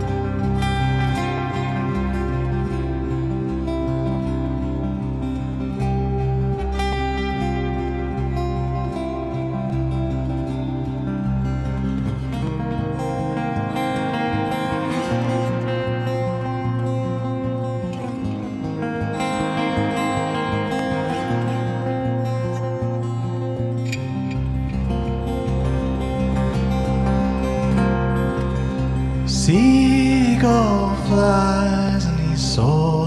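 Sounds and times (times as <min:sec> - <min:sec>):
acoustic guitar picking: 0:00.0 - 0:33.0.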